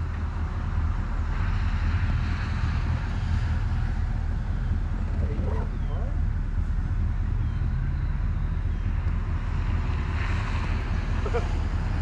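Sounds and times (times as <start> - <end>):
vehicle engine running at low revs: 0.0 - 12.0.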